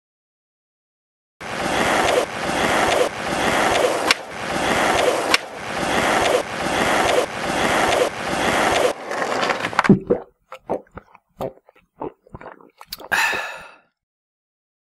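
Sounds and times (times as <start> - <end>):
skateboard wheels rolling on ramp: 1.4 - 9.9
skateboard clacks: 2.1 - 9.9.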